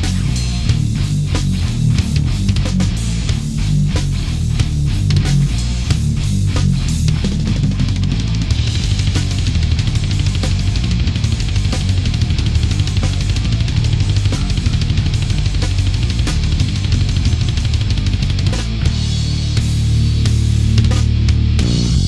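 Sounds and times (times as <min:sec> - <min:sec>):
thrash metal band playing: 0:00.0 - 0:22.0.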